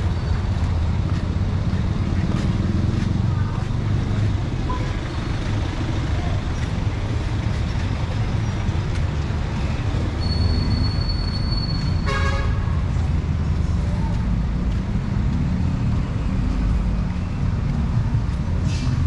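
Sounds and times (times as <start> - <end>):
street traffic rumble: 0.0 - 19.0
vehicle horn toot: 11.7 - 12.7.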